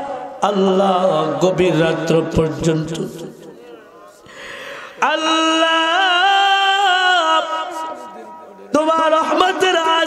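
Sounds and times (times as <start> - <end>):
man chanting: 0.0 - 4.2, 4.9 - 10.0.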